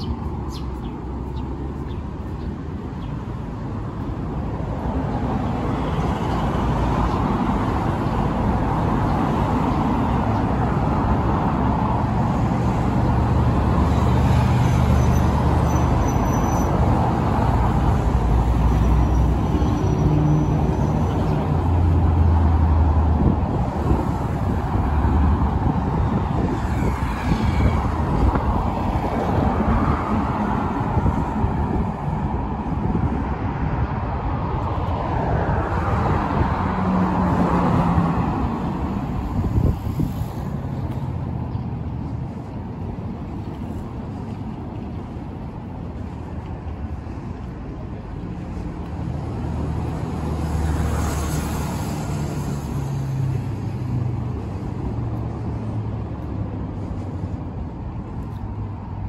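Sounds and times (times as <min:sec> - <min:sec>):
cars passing: 0:00.0 - 0:59.0
engine hum and tyre noise: 0:00.0 - 0:59.0.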